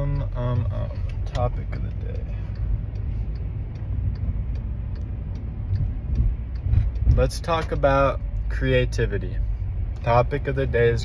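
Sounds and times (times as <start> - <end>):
car cabin rumble: 0.0 - 11.0
faint regular ticking: 0.0 - 11.0.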